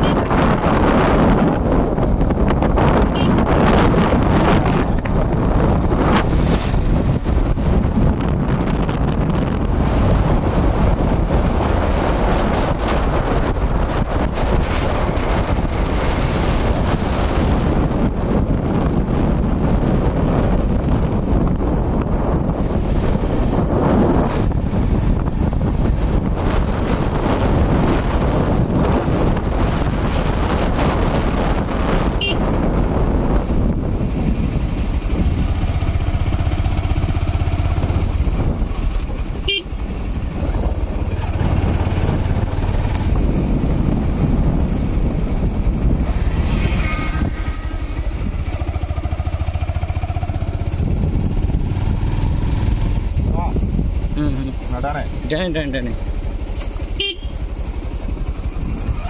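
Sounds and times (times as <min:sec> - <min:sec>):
motorbike engine: 0:00.0 - 0:59.0
road noise: 0:00.0 - 0:59.0
wind rushing over microphone: 0:00.0 - 0:59.0.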